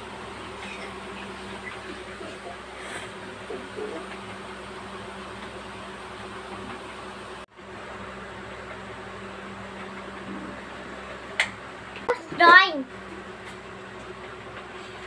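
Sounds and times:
fan humming with hiss: 0:00.0 - 0:15.0.

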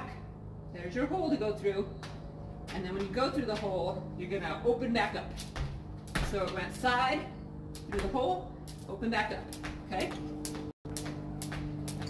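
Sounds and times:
jump rope ticking on concrete: 0:02.0 - 0:04.0, 0:05.1 - 0:07.0, 0:07.7 - 0:12.0.

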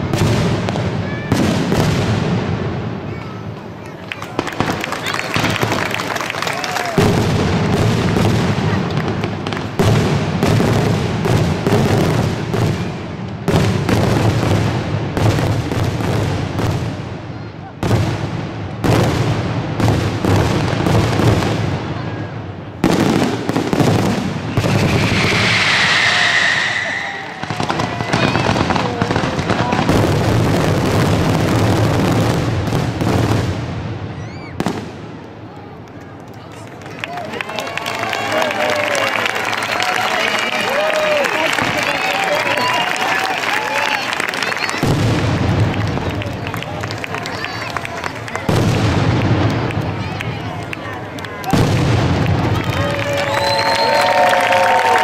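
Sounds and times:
crowd voices: 0:00.0 - 0:09.8, 0:17.0 - 0:18.7, 0:20.8 - 0:32.7, 0:34.1 - 0:55.0
fireworks booming and crackling: 0:00.0 - 0:35.4, 0:40.6 - 0:54.7.

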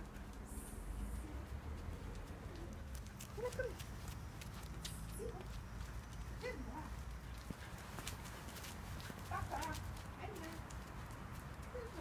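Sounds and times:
footsteps on asphalt: 0:01.7 - 0:11.9.

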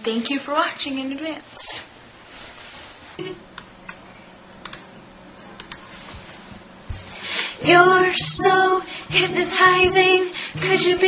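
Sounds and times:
computer keys clicking: 0:04.6 - 0:04.9, 0:05.6 - 0:05.8.

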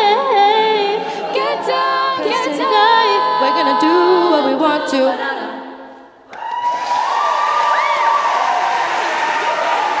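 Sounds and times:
audience applause and cheering: 0:06.3 - 0:10.0
high whoop: 0:06.3 - 0:10.0.

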